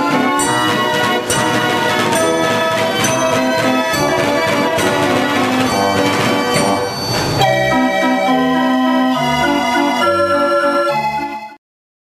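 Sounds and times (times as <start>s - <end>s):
band organ playing chords: 0.0s - 11.6s.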